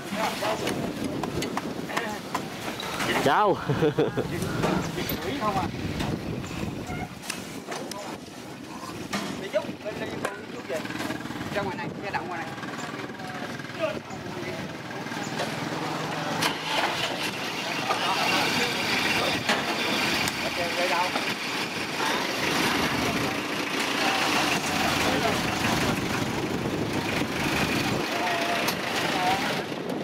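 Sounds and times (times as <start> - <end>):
people talking: 0.0 - 1.0, 1.9 - 6.2, 6.9 - 21.4, 22.0 - 26.6, 27.3 - 29.8
truck engine running: 8.5 - 30.0.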